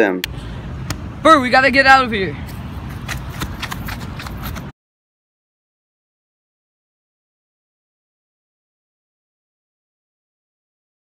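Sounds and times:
hurried footsteps: 2.4 - 4.7.

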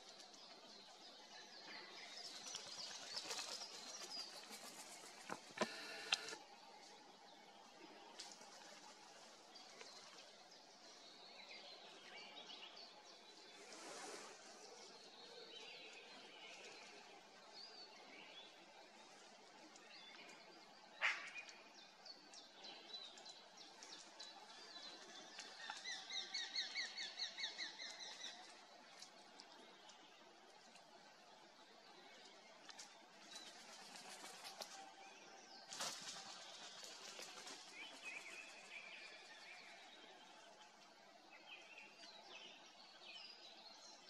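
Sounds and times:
faint birdsong: 0.0 - 44.0.

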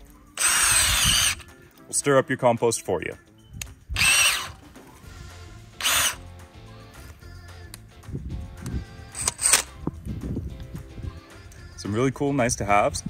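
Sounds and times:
cordless drill spinning: 0.4 - 1.5, 4.0 - 4.6, 5.8 - 6.3.

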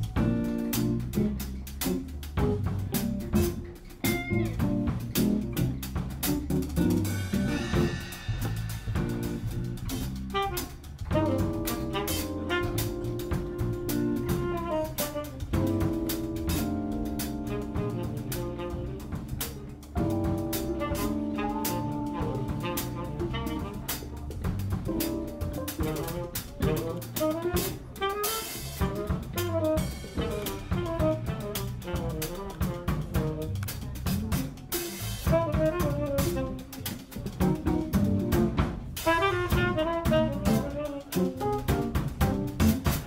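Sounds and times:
bass: 0.0 - 43.0
drum kit: 0.0 - 43.0
saxophone: 10.2 - 38.3, 39.0 - 43.0
keys playing held chords: 11.1 - 24.1.

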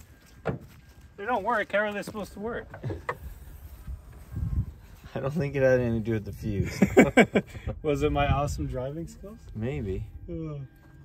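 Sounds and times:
wind rumbling on microphone: 2.7 - 10.6
person laughing: 6.6 - 7.7.

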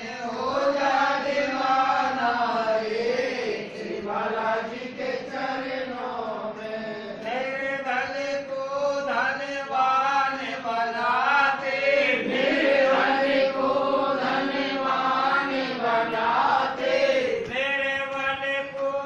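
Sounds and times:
devotional chant-like singing: 0.0 - 19.0.

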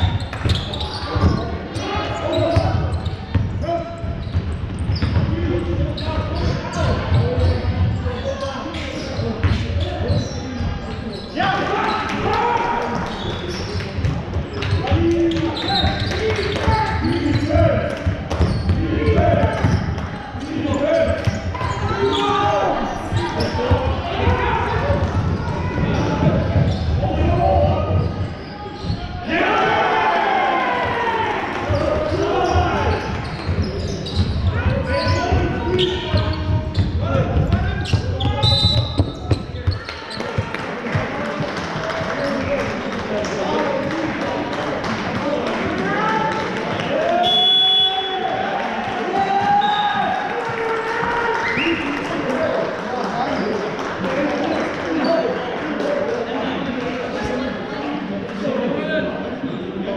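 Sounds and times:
basketball bouncing on court: 0.0 - 8.2, 13.0 - 29.0, 31.7 - 42.3
players shouting indistinctly: 20.7 - 33.2.

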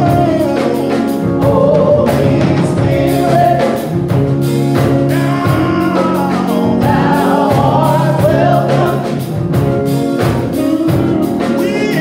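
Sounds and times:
guitar with steady beat: 0.0 - 12.0
women singing together: 6.1 - 9.2.

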